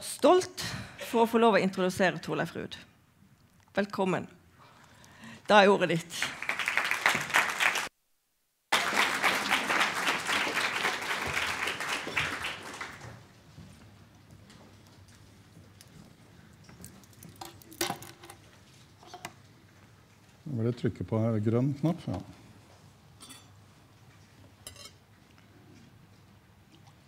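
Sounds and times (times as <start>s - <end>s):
audience applauding: 6.2s - 7.9s, 8.7s - 13.3s.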